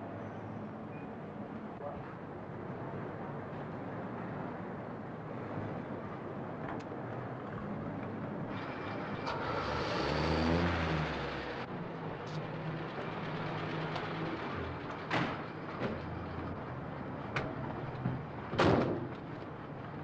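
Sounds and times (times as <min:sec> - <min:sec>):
street noise hiss: 0:00.0 - 0:20.0
car engine pulling up and idling: 0:07.1 - 0:20.0.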